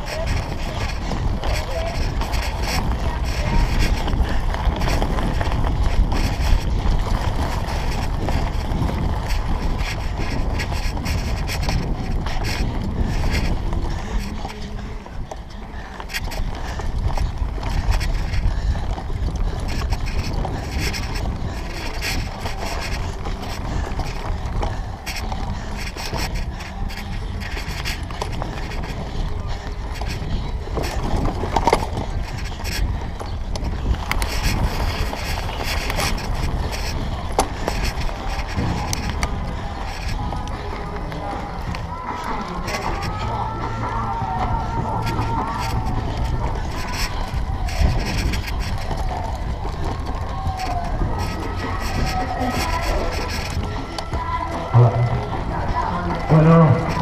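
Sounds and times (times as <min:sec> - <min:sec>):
bike rattling over bumps: 0:00.0 - 0:57.0
wind rumble on microphone: 0:00.0 - 0:57.0.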